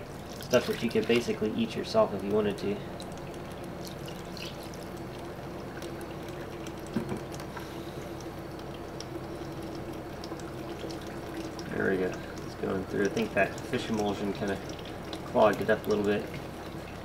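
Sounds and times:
liquid pouring and trickling: 0.0 - 17.0.

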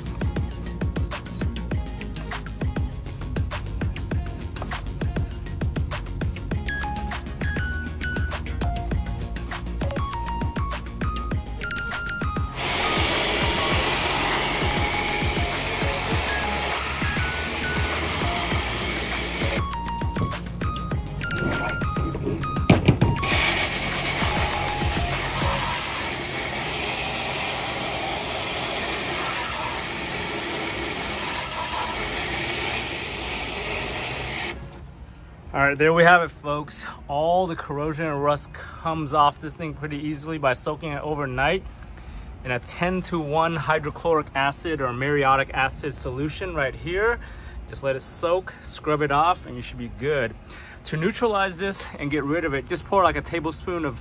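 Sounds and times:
plinking background music: 0.5 - 26.0
water spraying hiss: 11.9 - 19.9, 23.1 - 34.7
sharp knocks: 21.3 - 23.2.

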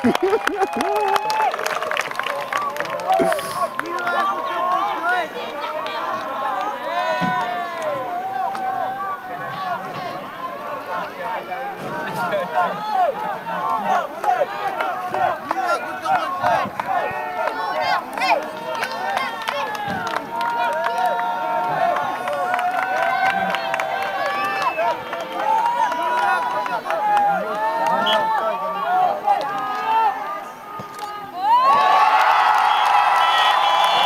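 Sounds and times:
person laughing: 0.0 - 1.1
crowd talking and calling out: 0.0 - 34.0.

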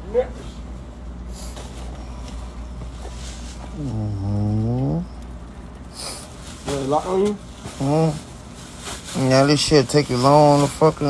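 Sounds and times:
indoor background hum: 0.0 - 11.0.

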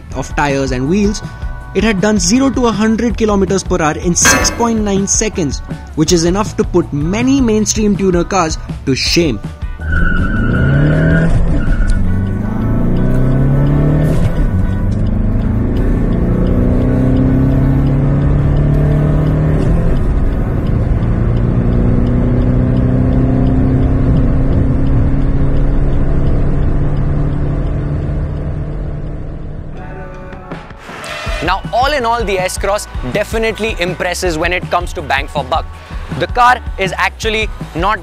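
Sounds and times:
diesel engine accelerating: 9.5 - 29.8.

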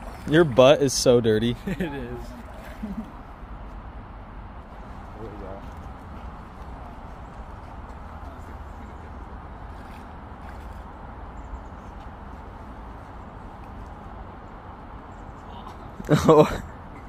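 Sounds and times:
creek water flowing over stones: 0.0 - 1.4.

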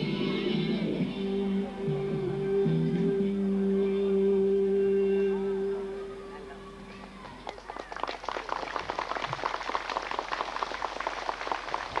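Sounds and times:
crowd applauding: 7.2 - 12.0.

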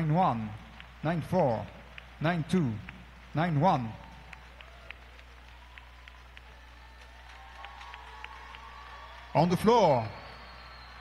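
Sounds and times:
crowd applause: 0.0 - 11.0.

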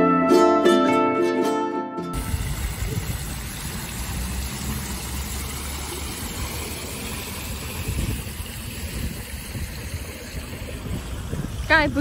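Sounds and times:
fountain water splashing: 2.2 - 12.0.

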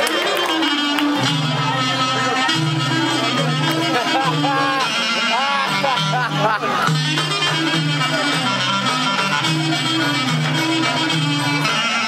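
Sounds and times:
folk dance music: 0.0 - 12.0.

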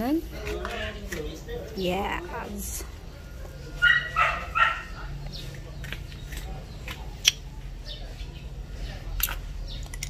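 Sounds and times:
small dog barking: 3.8 - 5.1.

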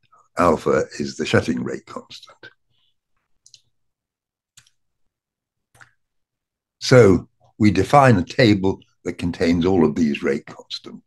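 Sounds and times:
man speaking: 0.4 - 2.6.

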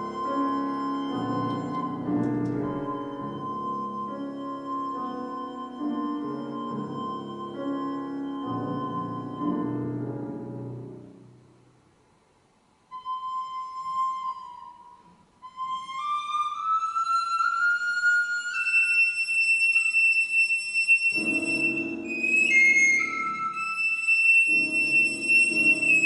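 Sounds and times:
recorder melody: 0.0 - 11.1, 12.9 - 26.0
piano chords: 0.0 - 11.7, 21.1 - 26.0.

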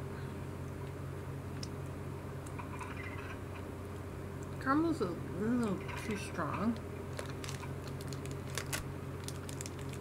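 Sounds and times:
steady low hum: 0.0 - 10.0
foil wrapper crinkling: 7.1 - 10.0.

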